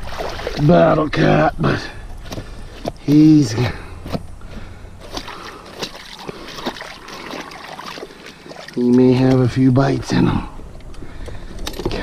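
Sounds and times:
shallow water splashing: 0.0s - 1.2s, 4.5s - 9.7s.

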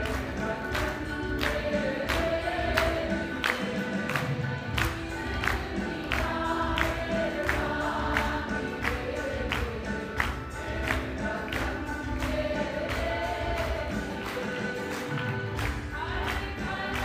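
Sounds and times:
group singing devotional song: 0.0s - 17.0s
harmonium: 0.0s - 17.0s.

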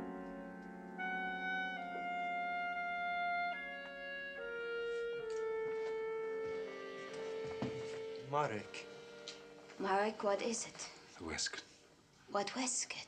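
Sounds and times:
orchestral sustained chords: 0.0s - 10.7s.

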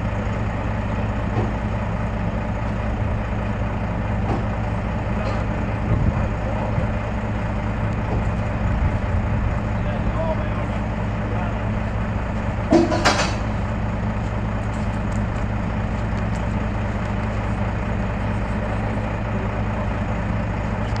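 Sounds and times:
diesel truck engine idling: 0.0s - 21.0s.

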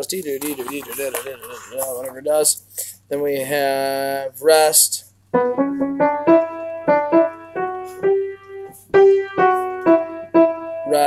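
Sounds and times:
piano notes ringing: 5.3s - 11.0s.

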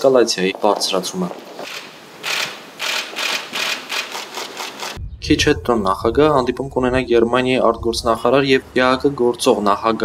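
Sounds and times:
camera shutters clicking: 1.7s - 5.0s.

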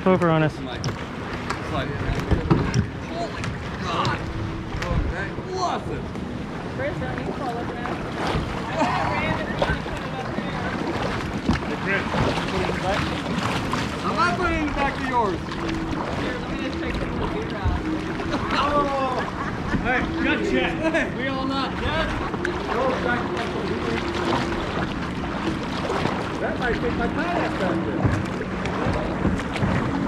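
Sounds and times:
people talking indistinctly: 0.0s - 29.6s
water against kayak hull: 0.0s - 30.0s
paddle strokes: 6.0s - 30.0s.

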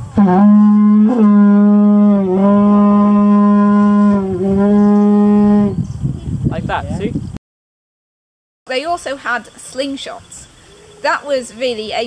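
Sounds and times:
war horn low note: 0.0s - 5.8s.

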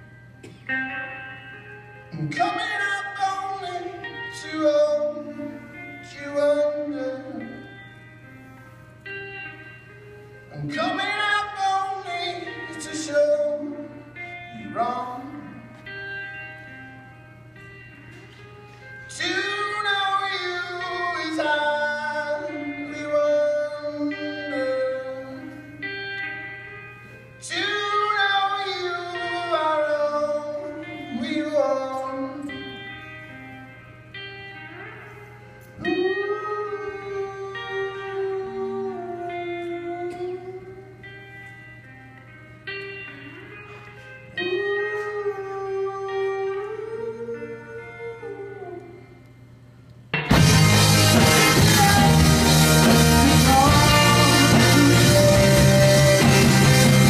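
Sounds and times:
electric guitar: 0.0s - 57.0s
person singing: 2.1s - 8.0s, 10.5s - 16.0s, 19.1s - 25.8s, 27.4s - 33.1s, 34.5s - 41.1s, 44.3s - 49.3s, 50.4s - 57.0s.

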